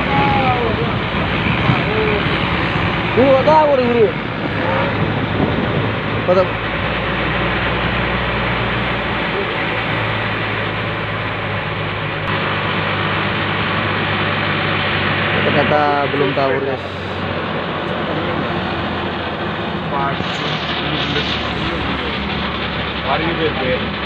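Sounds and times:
boat engine running: 0:00.0 - 0:24.0
rushing water: 0:00.0 - 0:24.0
rushing wind: 0:00.0 - 0:24.0.

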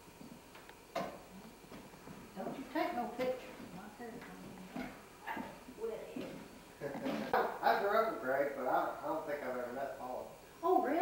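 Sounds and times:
indistinct conversational voices: 0:02.3 - 0:11.0.

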